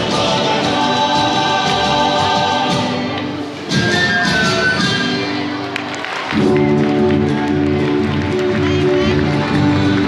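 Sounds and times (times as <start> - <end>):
folk music with group singing: 0.0 - 5.4, 6.9 - 10.0.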